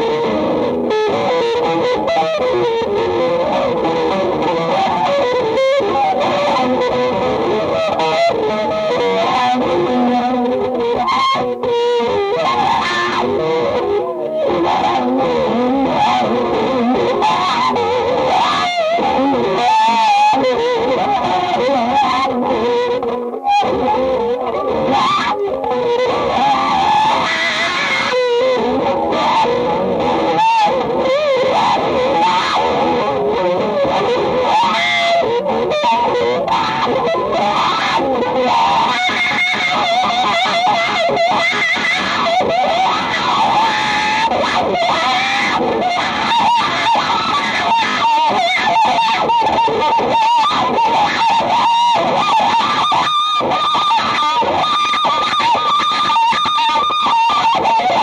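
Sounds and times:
electric guitar improvisation: 0.0s - 58.0s.

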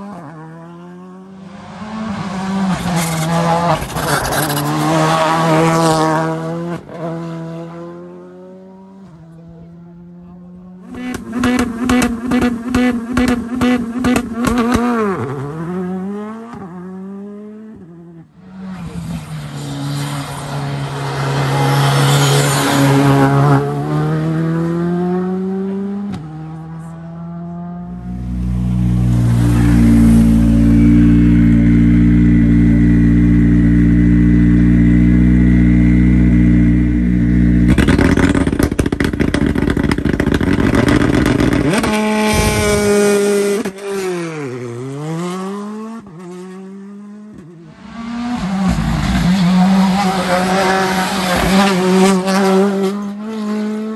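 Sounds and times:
rally car engine at high revs: 0.0s - 53.9s
rally car engines accelerating: 0.0s - 53.9s.

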